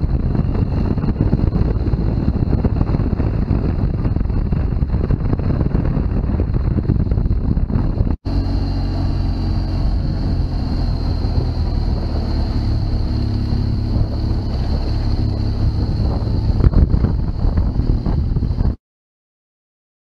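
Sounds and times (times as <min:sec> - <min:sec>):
motorcycle engine running: 0:00.0 - 0:18.8
wind noise on microphone: 0:00.0 - 0:18.8.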